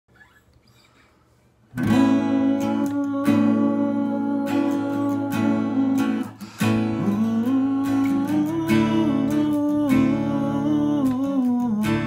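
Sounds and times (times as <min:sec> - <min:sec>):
acoustic guitar strumming: 0:01.7 - 0:12.0
man humming: 0:01.8 - 0:12.0.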